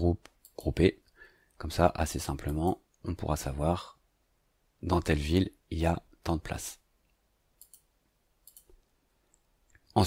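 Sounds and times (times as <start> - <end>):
computer mouse clicks: 0.2 - 0.8, 7.6 - 9.9.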